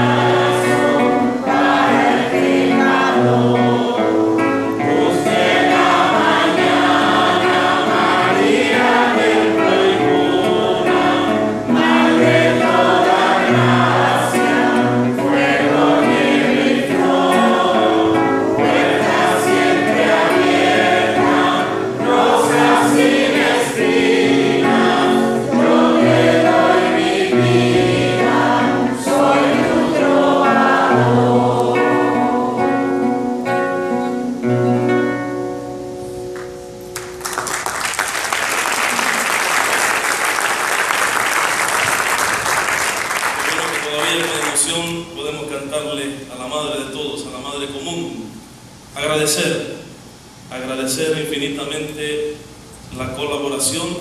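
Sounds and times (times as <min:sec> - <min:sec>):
congregation singing a hymn: 0:00.0 - 0:36.0, 0:37.0 - 0:54.0
instrumental accompaniment: 0:00.0 - 0:40.3.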